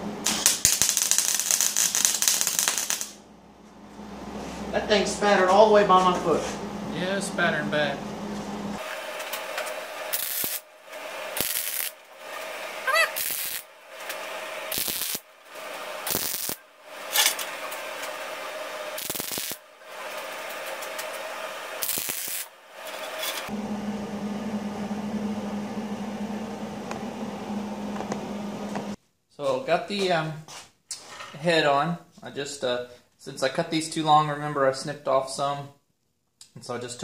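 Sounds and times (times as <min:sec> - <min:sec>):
welder arc crackling: 0:00.2 - 0:03.2, 0:08.8 - 0:18.2, 0:18.9 - 0:23.5
welding spatter: 0:00.2 - 0:03.2, 0:10.0 - 0:18.2, 0:18.9 - 0:23.5
steady low hum: 0:03.2 - 0:08.8, 0:23.5 - 0:29.0.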